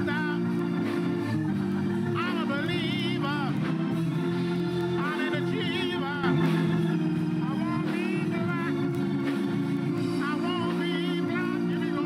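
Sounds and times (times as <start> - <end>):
organ sustained chords: 0.0 - 12.0
person singing gospel: 0.0 - 12.0.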